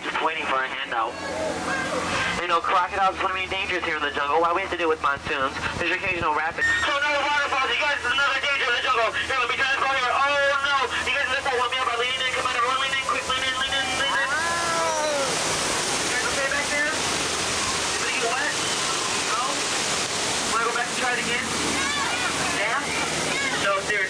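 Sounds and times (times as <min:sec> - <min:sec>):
people's voices: 0:00.0 - 0:24.0
waterfall pouring and splashing: 0:00.0 - 0:24.0.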